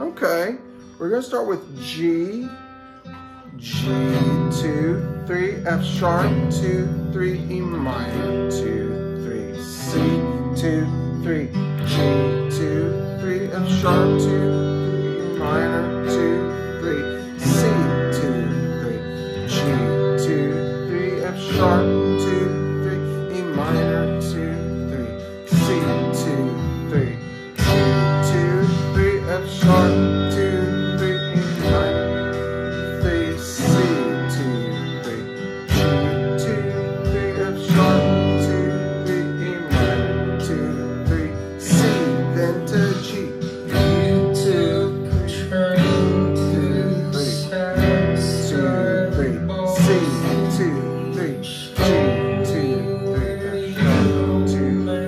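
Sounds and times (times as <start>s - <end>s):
electric guitar strumming chords: 0.0s - 55.0s
backing music with bass line: 1.8s - 55.0s.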